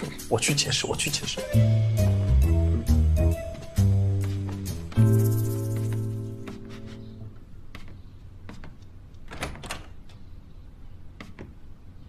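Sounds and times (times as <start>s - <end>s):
wardrobe door clicks and knocks: 8.5s - 10.2s.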